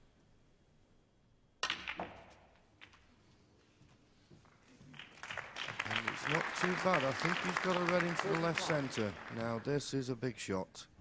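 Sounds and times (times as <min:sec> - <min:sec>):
snooker balls cracking together: 0:01.6 - 0:03.1.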